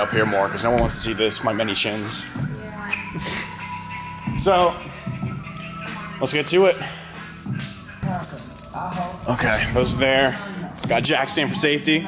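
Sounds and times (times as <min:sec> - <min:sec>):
background music: 0:00.0 - 0:12.0
indistinct voices: 0:00.0 - 0:12.0.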